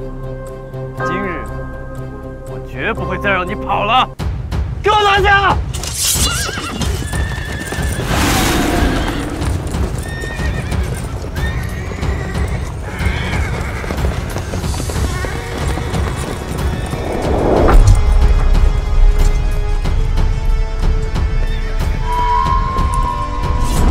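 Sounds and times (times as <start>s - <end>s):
background music: 0.0s - 23.9s
hooves clattering: 5.7s - 18.0s
horses neighing: 6.1s - 17.7s
deep low rumble: 16.8s - 21.2s.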